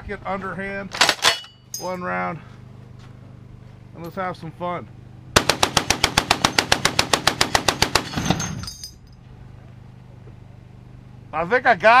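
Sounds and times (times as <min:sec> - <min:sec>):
heavy machine gun burst: 0:05.4 - 0:08.6.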